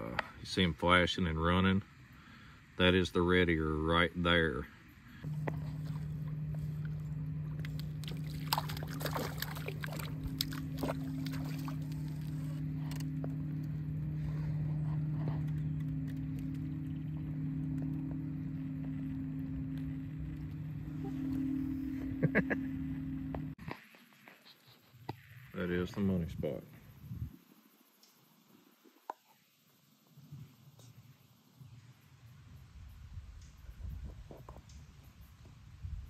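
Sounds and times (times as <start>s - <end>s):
boat motor humming: 1.8s - 23.6s.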